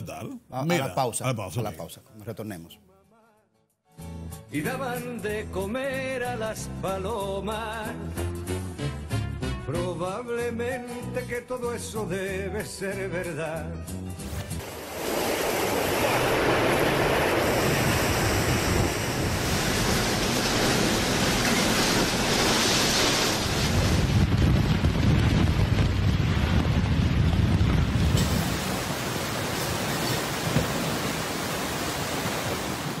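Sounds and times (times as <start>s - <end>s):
driving rain: 14.6s - 33.0s
hurricane-force wind: 14.6s - 33.0s
wind gusts buffeting microphone: 14.8s - 33.0s.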